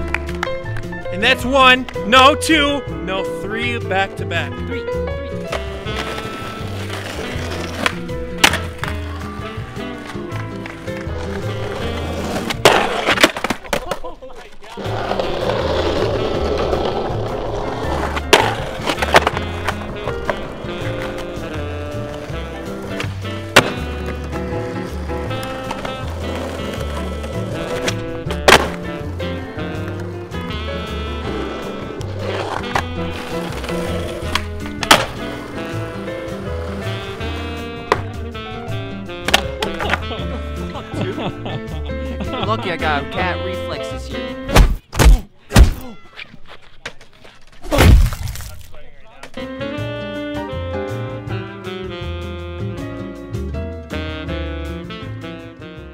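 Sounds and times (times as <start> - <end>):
skateboard wheels rolling on concrete: 0.0 - 44.9, 48.3 - 55.9
skateboard pops and landings: 5.5 - 9.4, 10.1 - 14.1, 16.1 - 21.5, 22.1 - 24.4, 25.2 - 30.1, 32.0 - 35.8, 39.2 - 40.1
background music with beat: 15.5 - 44.5, 49.4 - 55.9.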